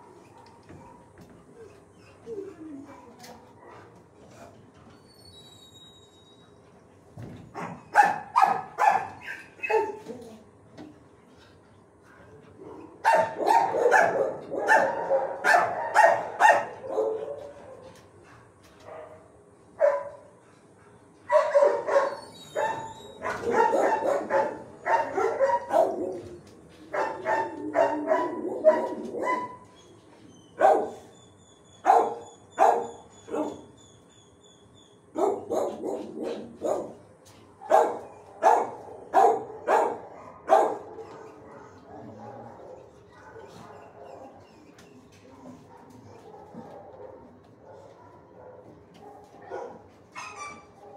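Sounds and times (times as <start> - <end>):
dogs barking: 7.5 - 10.2, 12.6 - 18.0, 18.8 - 20.4, 21.0 - 29.7, 30.6 - 31.1, 31.8 - 33.8, 35.0 - 44.4, 45.3 - 50.9.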